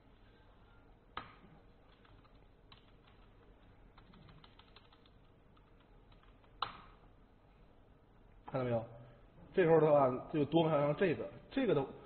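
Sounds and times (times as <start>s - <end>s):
keyboard typing: 1.2s - 7.0s.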